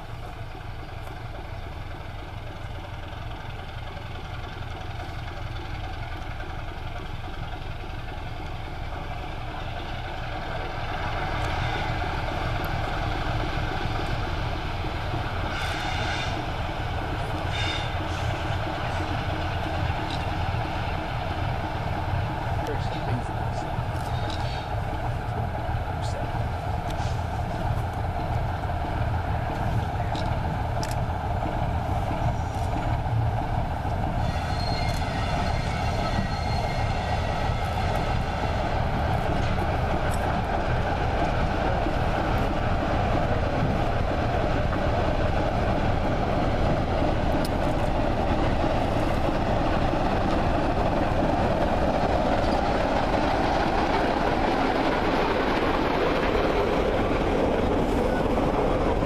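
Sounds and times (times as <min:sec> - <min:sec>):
diesel locomotive rumbling: 0:00.0 - 0:59.0.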